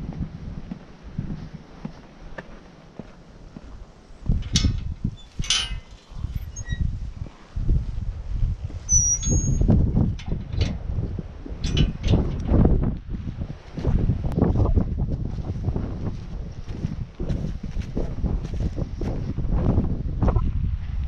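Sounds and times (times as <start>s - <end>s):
footsteps on concrete steps: 0.0s - 4.5s, 15.0s - 19.2s
wind buffeting microphone: 0.0s - 21.0s.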